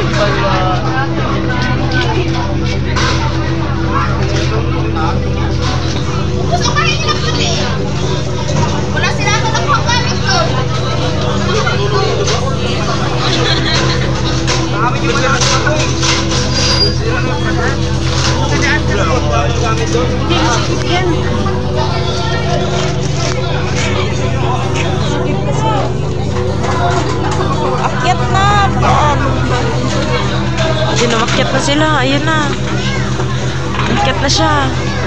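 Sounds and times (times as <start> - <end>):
crowd talking and calling out: 0.0 - 35.0
fire truck engine droning: 0.0 - 35.0.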